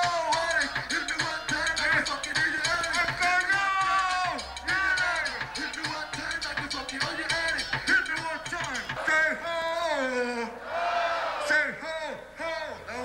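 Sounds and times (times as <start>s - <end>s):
reggaeton music: 0.0s - 10.1s
person rapping or singing: 0.0s - 10.4s.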